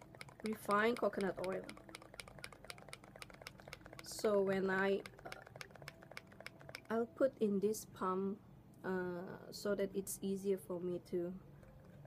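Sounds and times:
faint rapid clicking: 0.0s - 7.0s
faint steady hum: 0.0s - 12.0s.

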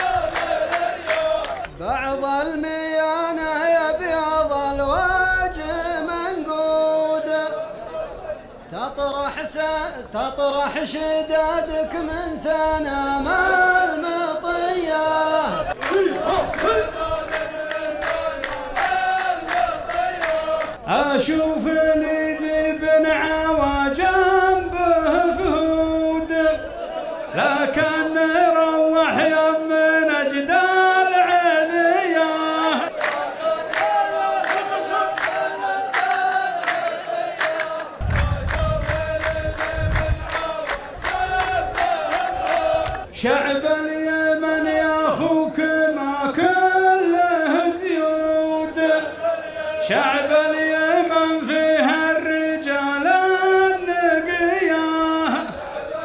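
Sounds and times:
rhythmic hand claps: 0.0s - 1.8s, 15.7s - 20.9s, 32.8s - 43.1s, 50.8s - 52.4s
men chanting in unison: 0.0s - 56.0s
low rumble: 38.0s - 40.3s.

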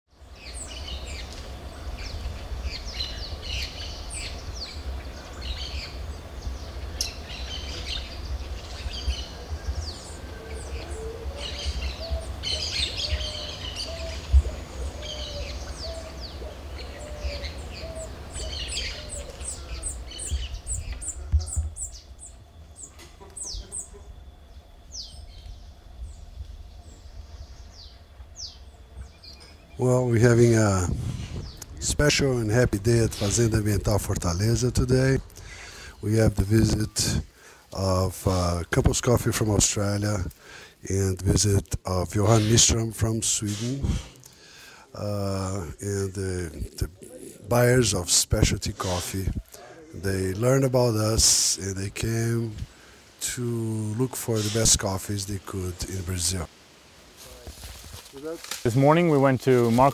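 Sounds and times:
repeated low bird call: 0.1s - 56.5s
birds chirping: 0.1s - 59.9s
low rumble: 24.1s - 35.3s.

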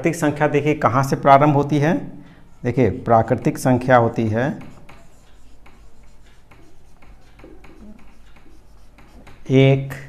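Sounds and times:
marker pen writing on whiteboard: 1.1s - 10.0s.

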